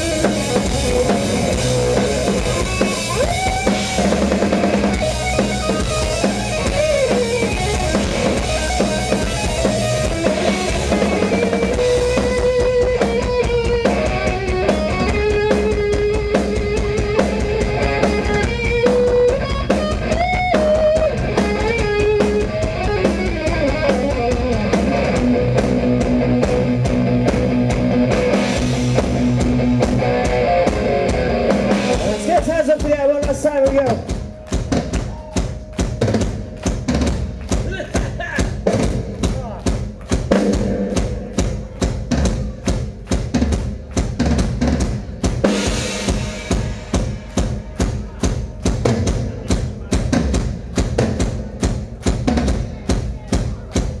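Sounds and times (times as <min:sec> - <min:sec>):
electric guitar lead lines: 0:00.0 - 0:34.4
bass guitar: 0:00.0 - 0:54.0
drums: 0:00.0 - 0:54.0.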